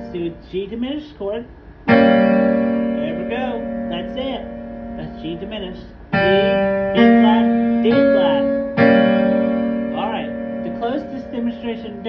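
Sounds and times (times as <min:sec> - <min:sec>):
piano chords on digital keyboard: 0:00.0 - 0:12.0.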